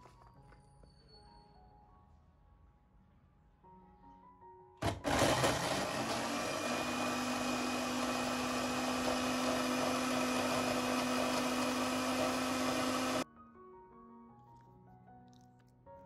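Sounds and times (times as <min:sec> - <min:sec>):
electric blender motor grinding: 0:04.8 - 0:13.2.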